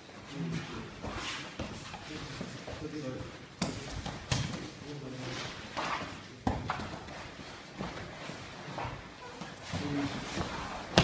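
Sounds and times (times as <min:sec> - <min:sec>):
bodies thudding on foam mats: 0:06.4 - 0:11.0.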